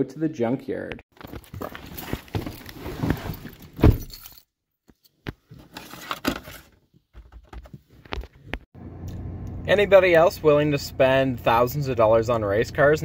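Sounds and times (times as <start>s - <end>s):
keys jangling: 3.9s - 4.5s.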